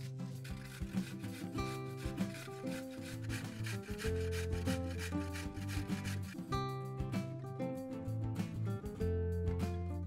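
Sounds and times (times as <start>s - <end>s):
carrot rasping on metal grater: 0.0s - 6.4s
background music: 0.0s - 10.0s.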